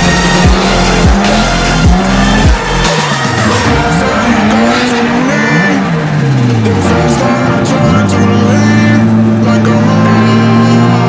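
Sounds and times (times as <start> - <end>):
electronic music with heavy bass: 0.0 - 11.0
rotary engine revving: 0.0 - 11.0.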